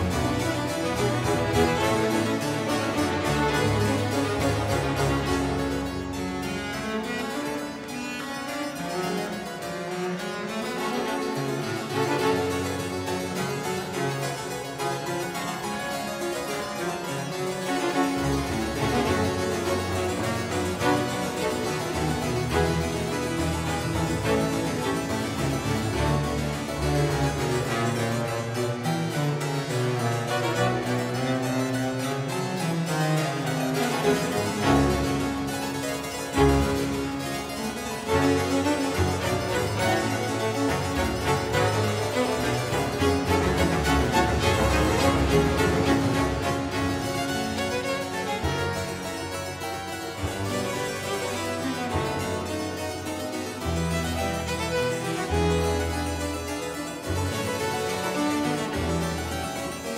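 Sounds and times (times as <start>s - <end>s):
harpsichord playing: 0.0s - 59.9s
string ensemble bass line: 0.0s - 59.9s.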